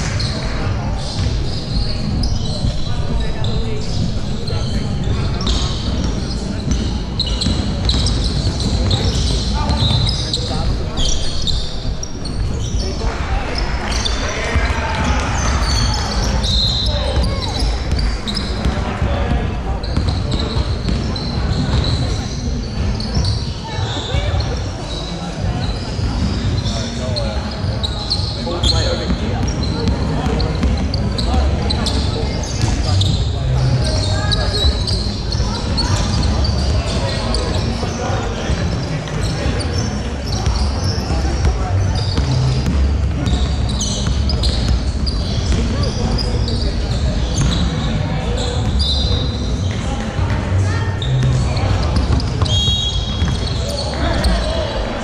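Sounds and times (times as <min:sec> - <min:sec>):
shoes squeaking: 0:00.0 - 0:55.0
ball bouncing on wooden court: 0:05.4 - 0:10.2, 0:14.6 - 0:22.2, 0:29.0 - 0:33.3, 0:40.4 - 0:46.3, 0:48.6 - 0:54.4.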